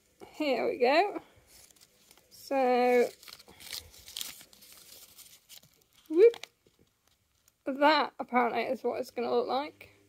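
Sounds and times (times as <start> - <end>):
paper band crinkling: 1.5 - 7.7.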